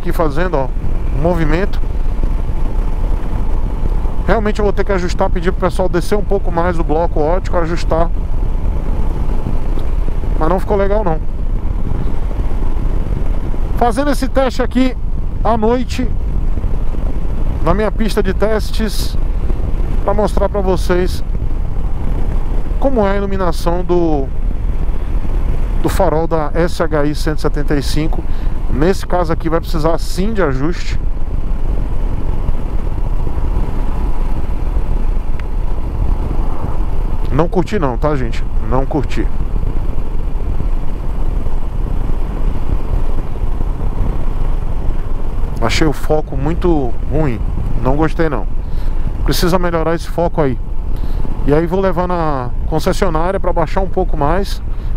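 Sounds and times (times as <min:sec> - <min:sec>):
motorcycle engine rumble: 0:00.0 - 0:54.9
road noise: 0:00.0 - 0:54.9
wind on microphone: 0:00.0 - 0:54.9.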